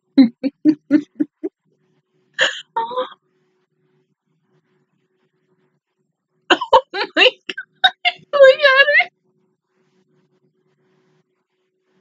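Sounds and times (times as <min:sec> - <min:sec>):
woman laughing: 0:00.2 - 0:01.5, 0:06.5 - 0:08.5
woman exclaiming: 0:06.5 - 0:09.1.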